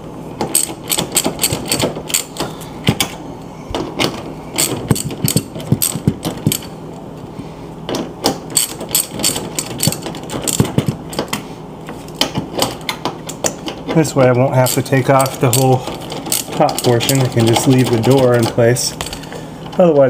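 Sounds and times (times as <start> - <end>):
socket ratchet clicking: 4.6 - 6.7.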